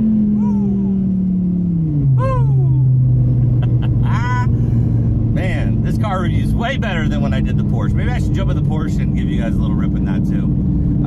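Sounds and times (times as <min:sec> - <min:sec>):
car engine drone from inside: 0:00.0 - 0:11.0
voice-like whoop: 0:00.4 - 0:01.0, 0:02.2 - 0:02.9.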